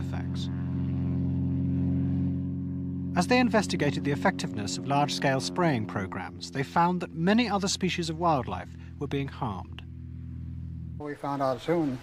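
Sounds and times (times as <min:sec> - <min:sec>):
aeroplane engine droning: 0:00.0 - 0:12.0.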